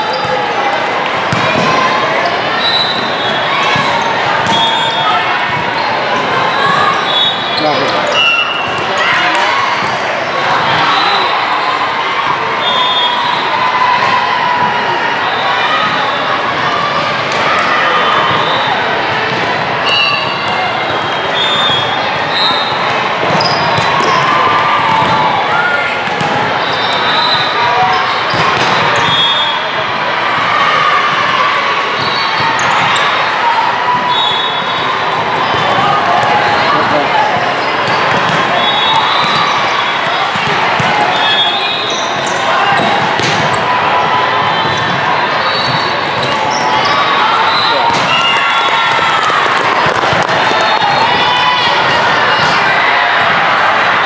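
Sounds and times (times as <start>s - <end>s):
babble of voices: 0.0s - 54.0s
sneakers squeaking on court: 0.1s - 0.4s, 21.5s - 24.3s, 37.4s - 43.7s, 44.4s - 48.4s
volleyball being hit: 42.8s - 43.5s.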